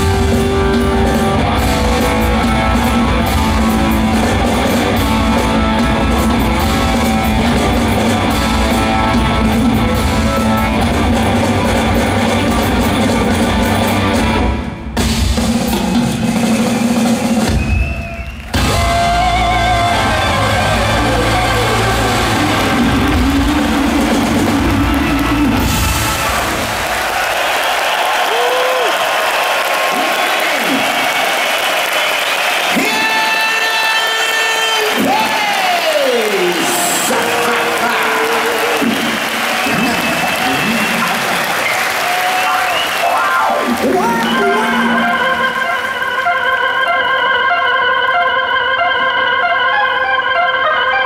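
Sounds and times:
live rock band playing: 0.0 - 27.2, 31.8 - 47.8
crowd cheering and applauding: 0.0 - 47.0.

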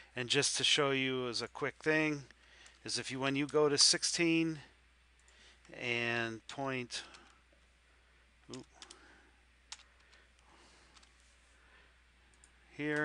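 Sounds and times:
faint room hiss: 0.0 - 13.0
keyboard and mouse clicks: 9.7 - 10.2.

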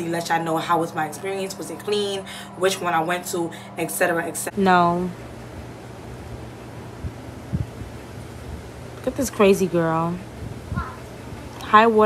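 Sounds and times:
wind on microphone: 5.4 - 12.0
soft low thumps: 6.4 - 8.7.

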